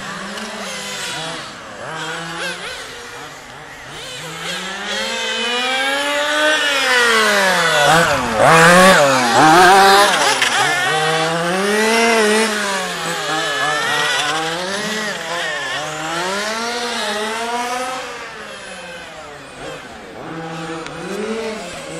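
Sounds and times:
small two-stroke engine revving: 0:00.0 - 0:21.9.

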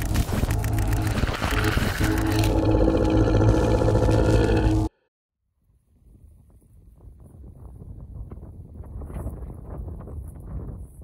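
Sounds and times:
intro soundtrack music: 0:00.0 - 0:05.0
deep roar-like effect: 0:00.0 - 0:05.1.

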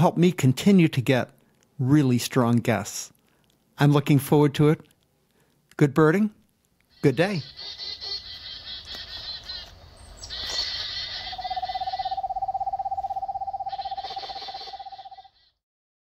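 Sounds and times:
birds twittering and trilling: 0:06.9 - 0:15.6.

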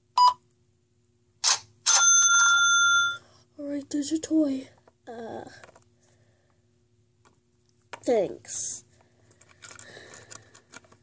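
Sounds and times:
cash register ka-ching bell: 0:01.9 - 0:03.2.

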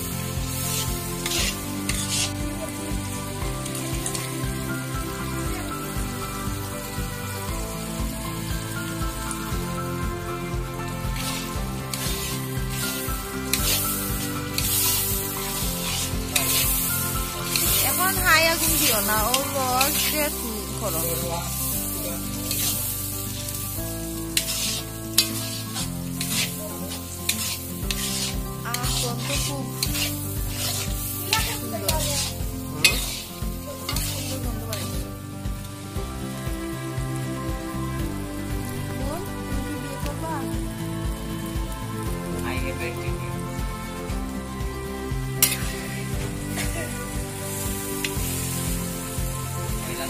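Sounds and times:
noodles sizzling in a pan: 0:00.0 - 0:50.0
metal spatula scraping and clinking: 0:00.5 - 0:02.4, 0:11.2 - 0:23.6, 0:24.4 - 0:35.0, 0:45.4 - 0:45.9.

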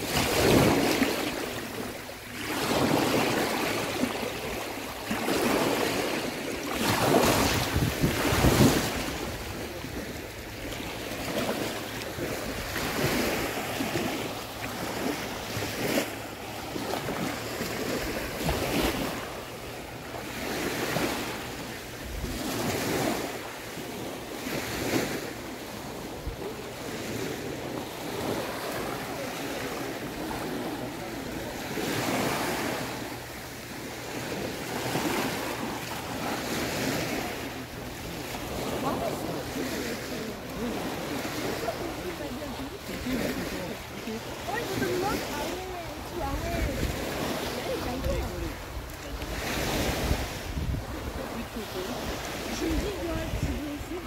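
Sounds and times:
small waves washing over sand: 0:00.0 - 0:54.0
wind on microphone: 0:05.2 - 0:10.4, 0:44.5 - 0:54.0.

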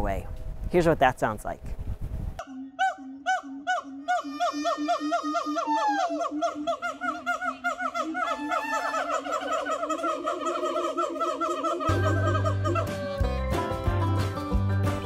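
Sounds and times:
siamangs whooping calls: 0:02.4 - 0:13.6.

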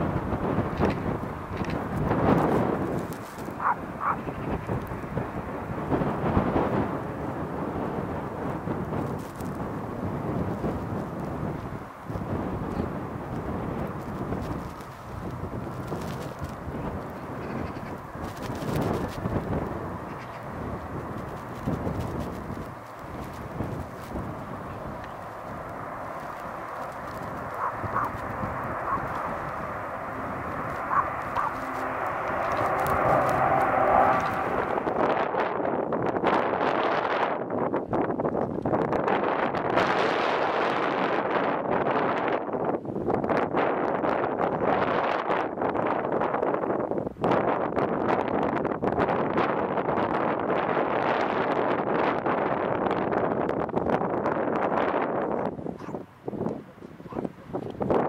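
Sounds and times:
jet engines rushing: 0:00.0 - 0:36.2
turboprop plane passing overhead: 0:00.0 - 0:37.5
wind buffeting microphone: 0:00.0 - 0:58.0.

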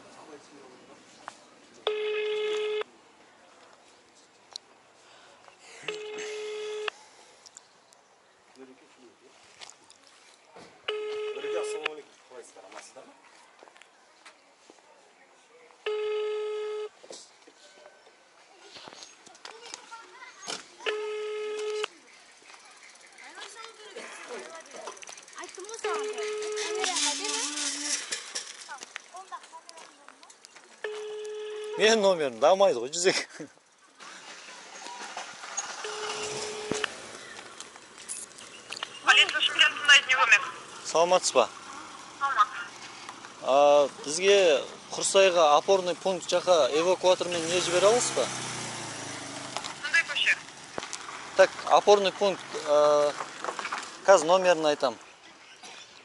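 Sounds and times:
phone ringback tone beep: 0:01.9 - 0:02.9, 0:05.9 - 0:06.9, 0:10.9 - 0:11.9, 0:15.9 - 0:17.0, 0:20.9 - 0:21.9, 0:25.9 - 0:26.9, 0:30.8 - 0:31.9, 0:35.8 - 0:36.9.

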